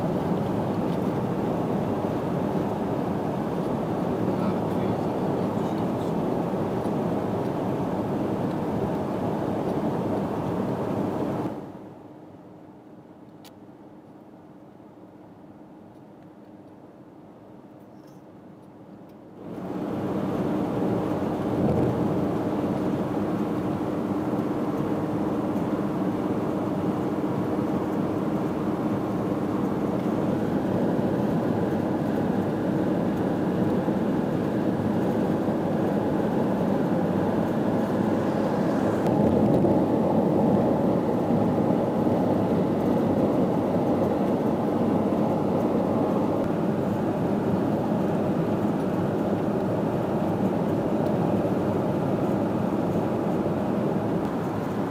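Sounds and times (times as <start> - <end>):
car cabin road and engine noise: 0.0 - 54.9.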